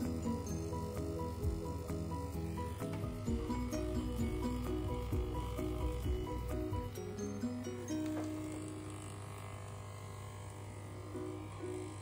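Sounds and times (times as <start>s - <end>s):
background music: 0.0s - 9.1s
electric clippers buzzing: 0.0s - 12.0s.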